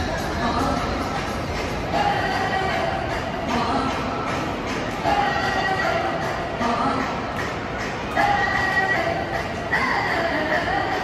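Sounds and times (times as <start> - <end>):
murmur of crowd: 0.0 - 11.0.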